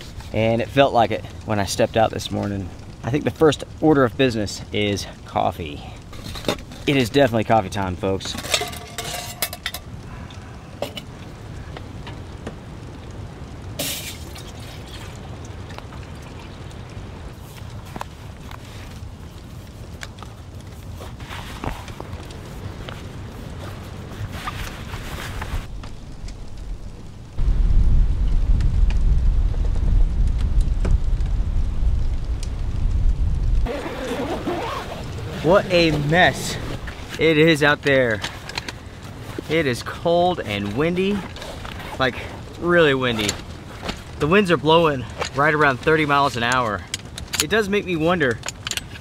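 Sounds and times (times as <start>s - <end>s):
wind rumbling on microphone: 0.0s - 47.4s.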